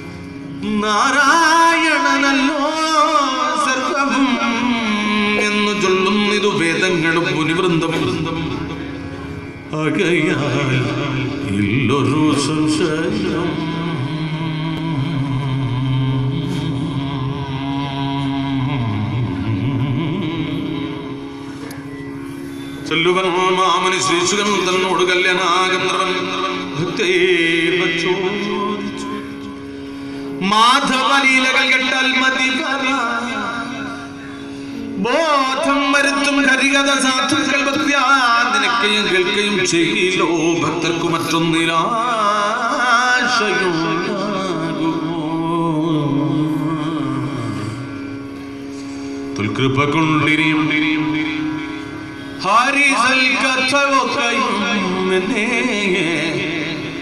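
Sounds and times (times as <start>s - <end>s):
person chanting: 0.0s - 21.7s, 22.8s - 29.6s, 30.2s - 57.0s
held musical drone: 0.0s - 57.0s.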